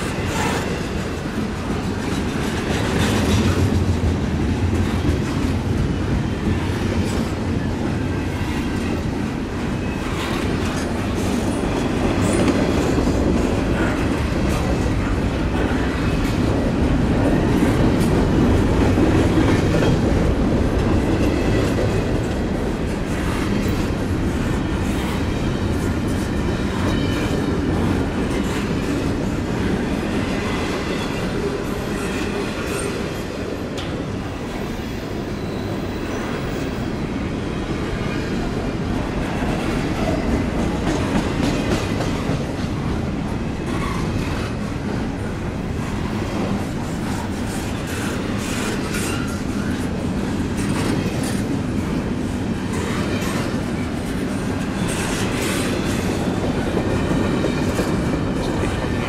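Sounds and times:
steel wheels rumbling on rail: 0.0 - 59.0.

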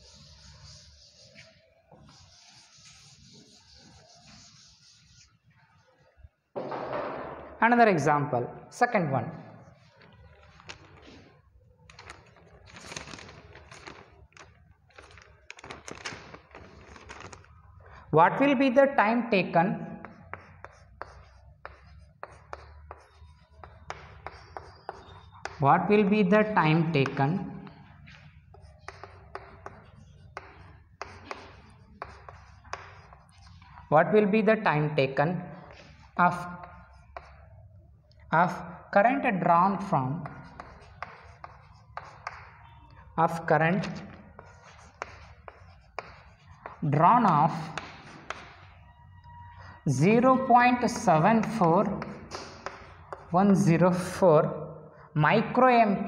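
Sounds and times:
chalk tapping on chalkboard: 0.0 - 5.3, 20.0 - 25.6, 27.0 - 33.7, 35.7 - 37.5, 40.2 - 42.6, 43.8 - 48.7, 50.9 - 53.4
chalk scratching on chalkboard: 0.0 - 5.5, 20.0 - 26.0, 26.6 - 33.9, 35.6 - 37.5, 39.7 - 42.6, 43.3 - 48.8, 50.8 - 54.1.

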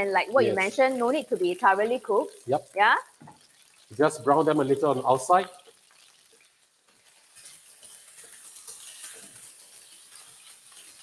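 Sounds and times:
chicken sizzling in oil: 0.0 - 11.0.

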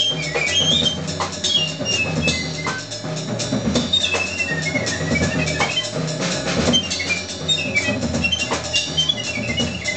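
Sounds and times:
double bass: 0.0 - 9.9
drum kit with cymbals: 0.0 - 9.9.

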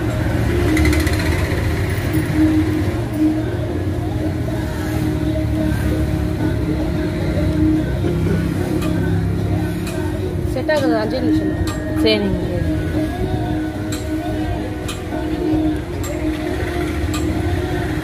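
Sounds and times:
road traffic rumble: 0.0 - 18.0.

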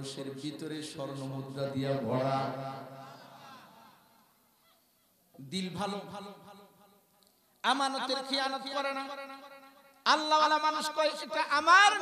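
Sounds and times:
man chanting with echo: 0.0 - 3.9, 7.6 - 12.0.

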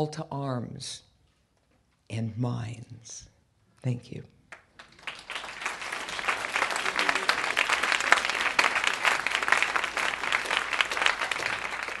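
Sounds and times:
audience applauding: 4.5 - 12.0.

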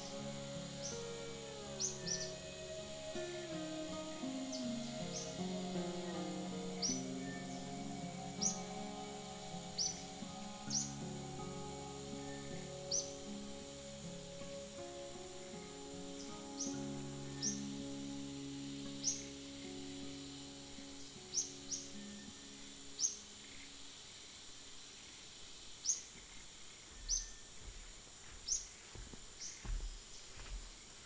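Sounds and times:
bird chirps: 0.0 - 23.8, 25.8 - 27.7
soft background music: 0.0 - 23.9
high insect drone: 0.0 - 31.0.

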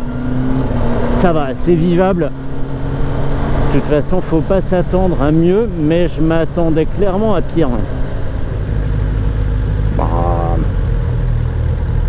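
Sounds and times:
motorcycle engine purring: 7.8 - 12.0
steady-pitched tone: 10.0 - 10.8.

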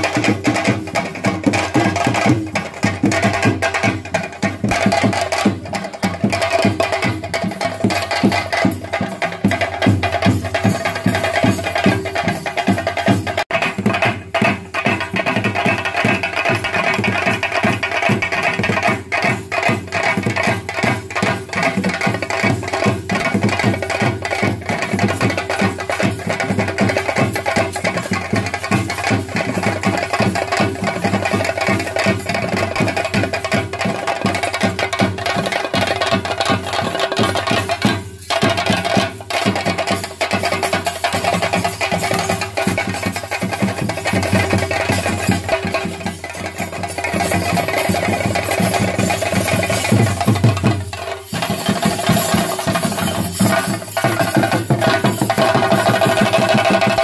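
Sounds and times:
drums played with sticks: 0.0 - 57.0.

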